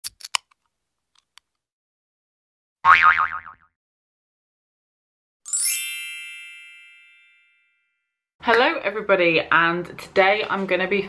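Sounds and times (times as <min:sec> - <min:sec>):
cartoon boing spring effect: 0:02.9 - 0:03.7.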